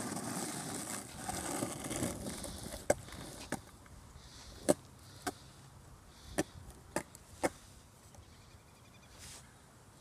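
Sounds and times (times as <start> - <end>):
skateboard clacking on asphalt: 0.0 - 5.4, 6.4 - 7.6.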